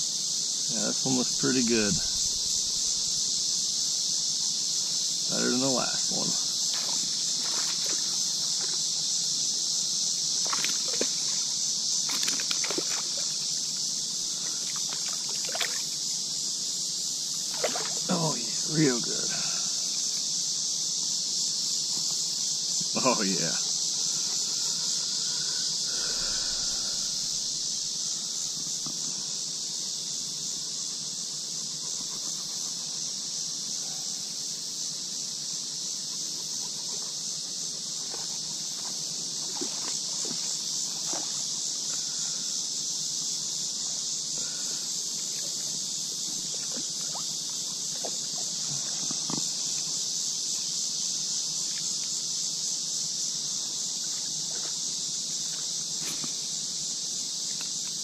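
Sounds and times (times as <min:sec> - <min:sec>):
insects droning: 0:00.0 - 0:58.0.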